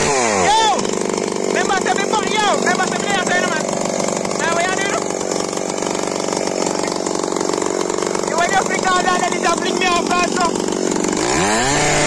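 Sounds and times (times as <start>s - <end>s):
chainsaw running: 0.0s - 12.0s
person speaking: 1.5s - 5.2s, 8.1s - 10.8s.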